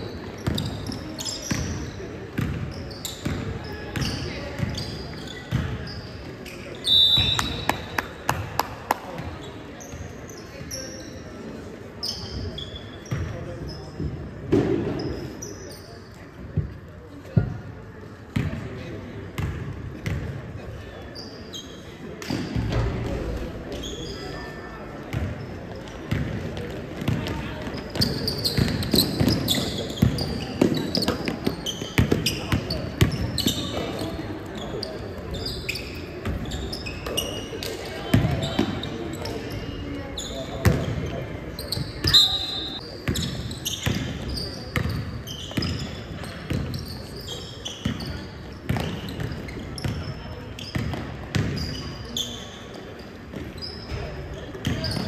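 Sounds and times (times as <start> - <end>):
sneaker squeaks: 0.0 - 17.6, 18.4 - 55.0.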